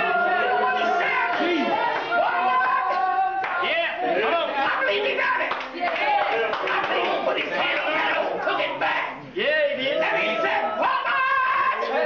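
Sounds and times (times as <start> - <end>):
congregation voices calling out: 0.0 - 12.0
hand clapping: 1.3 - 3.7, 5.4 - 7.9.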